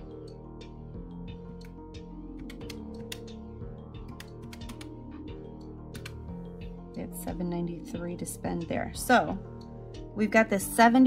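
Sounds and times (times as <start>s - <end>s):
background music: 0.0s - 11.0s
calculator keys clicking: 4.1s - 4.9s.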